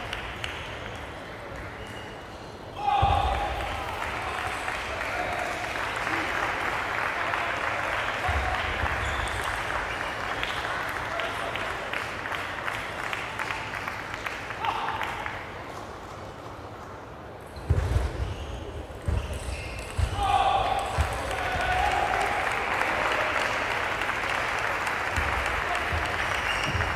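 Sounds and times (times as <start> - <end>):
applause: 0.0 - 1.8, 3.3 - 15.9, 20.6 - 26.9
people shouting: 2.8 - 4.0, 20.1 - 23.4.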